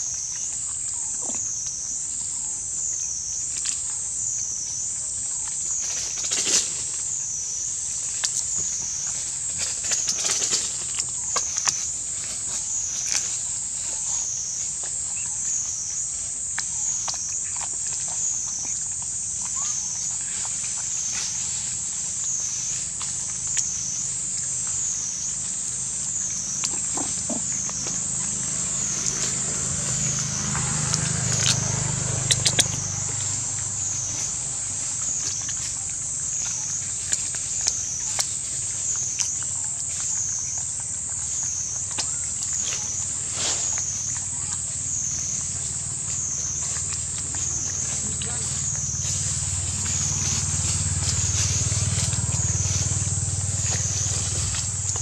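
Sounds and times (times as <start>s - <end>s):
high-pitched insect chorus: 0.0s - 55.0s
monkeys biting into watermelon rind: 0.0s - 55.0s.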